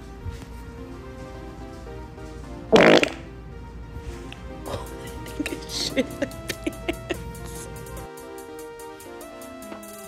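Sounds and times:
background music: 0:00.0 - 0:10.0
short fluttering fart: 0:02.7 - 0:03.2.

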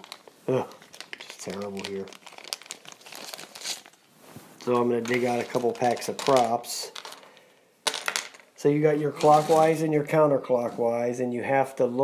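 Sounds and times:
plastic bag crinkling: 0:00.0 - 0:10.8.

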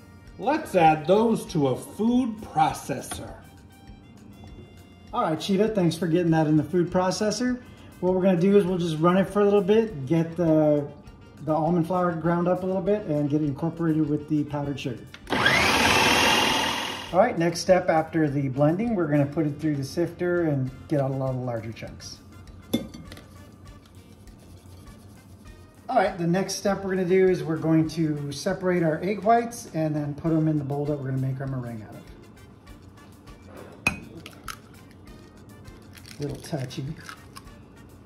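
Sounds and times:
food processor motor whining: 0:15.2 - 0:17.2.

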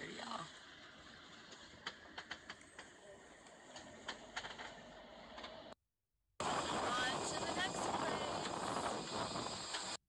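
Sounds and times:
loud steady rushing noise: 0:06.4 - 0:09.7
voice: 0:06.7 - 0:08.5.

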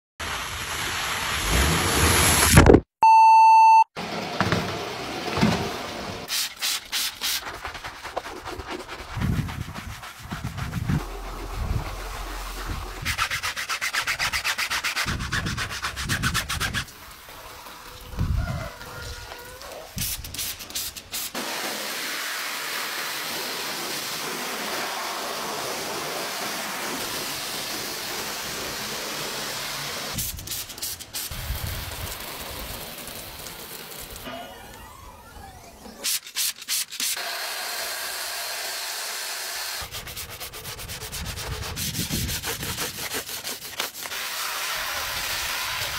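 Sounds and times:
rubbing and scrubbing: 0:06.2 - 0:18.0, 0:39.8 - 0:45.9.

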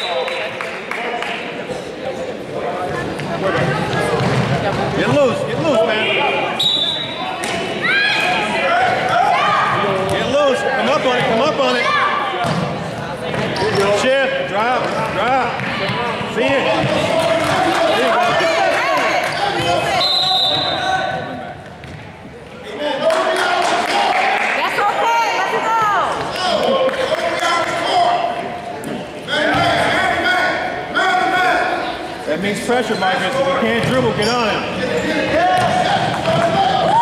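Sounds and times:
players and spectators calling out: 0:00.0 - 0:21.7, 0:22.4 - 0:37.0
referee's whistle: 0:06.6 - 0:07.3, 0:19.7 - 0:21.0.

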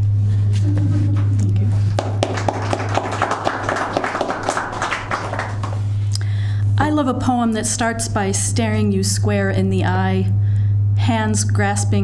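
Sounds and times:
steady low hum: 0:00.0 - 0:12.0
audience applauding: 0:01.9 - 0:06.0.

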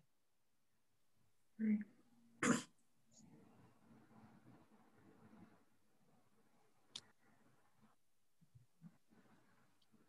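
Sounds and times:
faint room noise: 0:00.0 - 0:10.0
sharp cough: 0:02.4 - 0:02.8.

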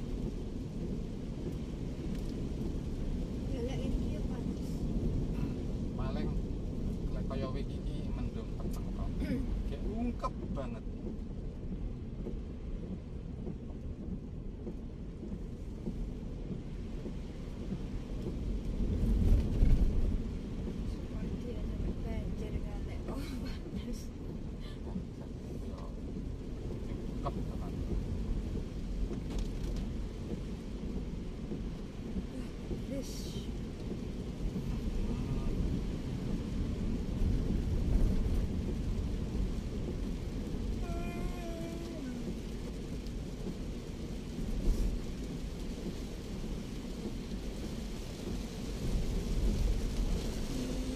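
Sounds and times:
car cabin rumble on wet road: 0:00.0 - 0:50.9
light ticks and taps: 0:01.3 - 0:03.4, 0:10.2 - 0:20.9.

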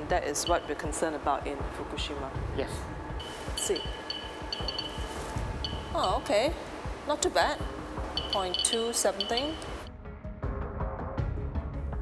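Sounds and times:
background music: 0:00.0 - 0:12.0
geiger counter clicking: 0:03.2 - 0:06.3, 0:07.5 - 0:09.9.

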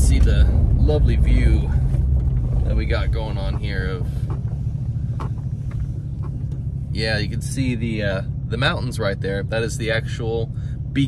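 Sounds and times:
truck engine rumbling: 0:00.0 - 0:11.0.

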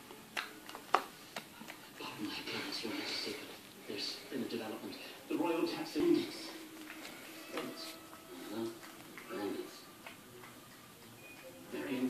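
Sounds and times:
television voice: 0:00.0 - 0:12.0.

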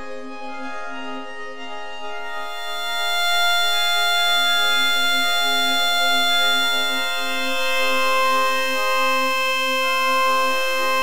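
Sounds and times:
electronic drone chord: 0:02.1 - 0:11.0
higher sustained tone: 0:02.3 - 0:11.0.

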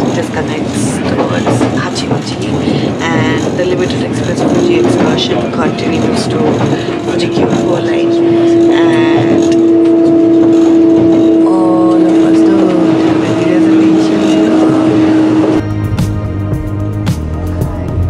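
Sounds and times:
train carriage droning hum: 0:00.0 - 0:15.7
music with steady beat: 0:14.8 - 0:18.0.

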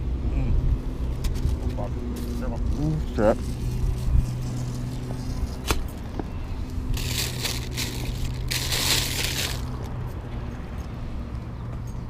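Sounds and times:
paper wrapper crinkling: 0:06.9 - 0:09.9.

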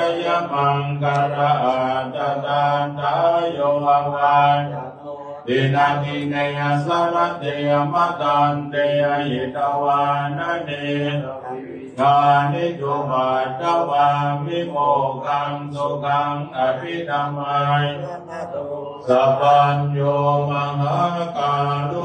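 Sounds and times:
low monotone chanting: 0:00.0 - 0:22.0.

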